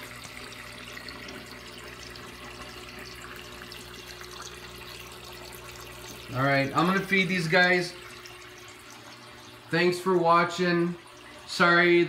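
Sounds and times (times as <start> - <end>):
low pump hum: 0.0 - 12.0
running water in aquarium: 0.0 - 12.0.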